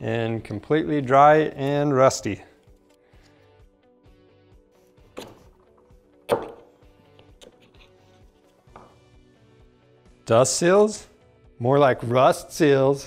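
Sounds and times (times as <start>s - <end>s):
quiet background music: 0.0s - 13.0s.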